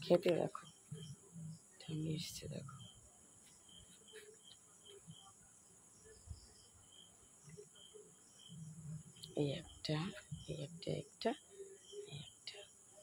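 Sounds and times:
crickets chirring: 0.0 - 13.0.

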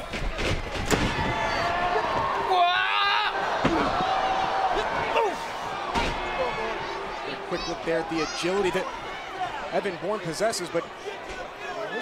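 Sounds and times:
arena crowd voices: 0.7 - 12.0.

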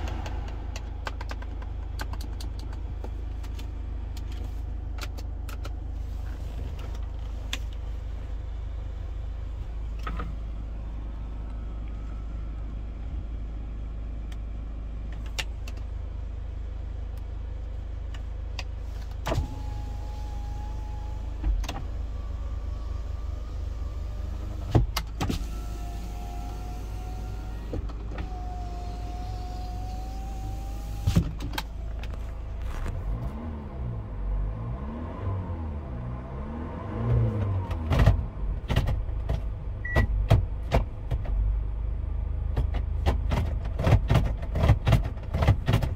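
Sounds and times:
car engine idling: 0.0 - 33.4
power window motor whine: 19.3 - 33.4.

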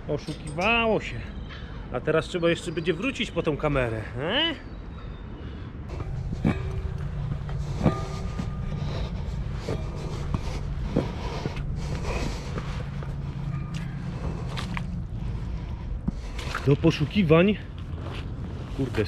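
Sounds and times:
steady low rumble: 4.9 - 19.0
boots knocking on metal ladder rungs: 5.9 - 12.7.

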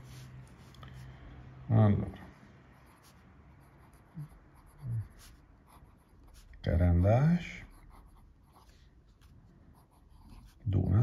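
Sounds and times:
fountain pen scratching paper: 2.8 - 10.9.

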